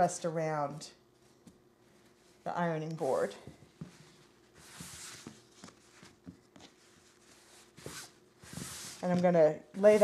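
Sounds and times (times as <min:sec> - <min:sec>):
cloth rustling: 0:03.7 - 0:09.2.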